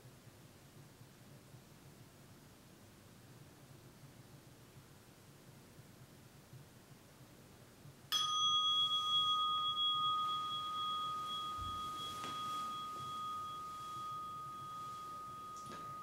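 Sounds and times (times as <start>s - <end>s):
meditation bell ringing: 8.1s - 16.0s.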